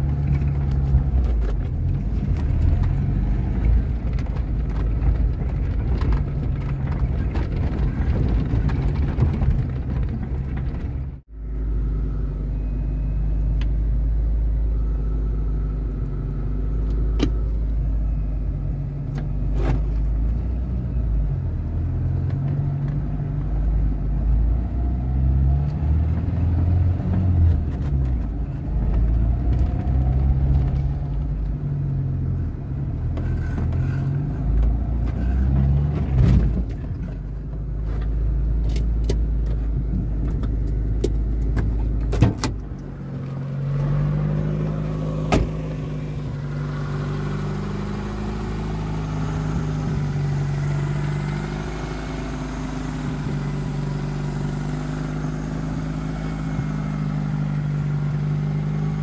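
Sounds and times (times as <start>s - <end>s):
car engine at low revs: 0.0s - 59.0s.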